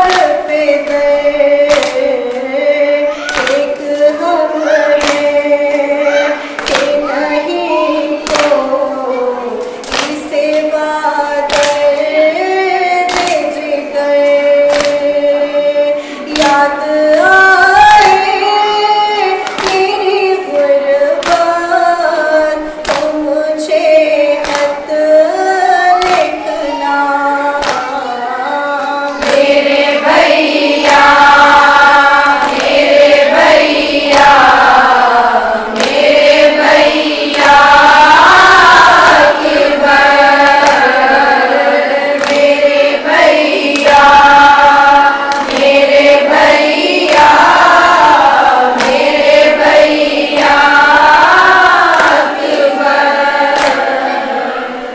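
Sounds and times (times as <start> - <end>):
woman singing a lament: 0.0 - 54.2.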